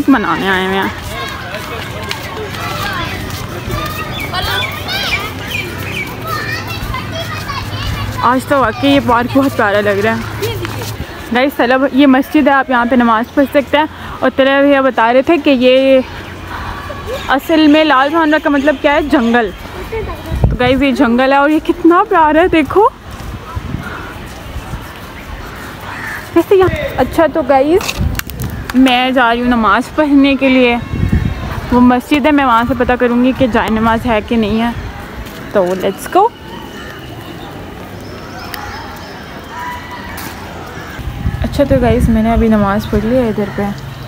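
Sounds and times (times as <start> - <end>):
woman's voice: 0.0 - 1.0, 8.2 - 16.1, 17.2 - 23.0, 28.7 - 30.9, 31.7 - 34.8, 35.5 - 36.4, 41.4 - 43.9
soft footsteps on dirt path: 0.0 - 12.4
children calling and chattering: 0.0 - 44.0.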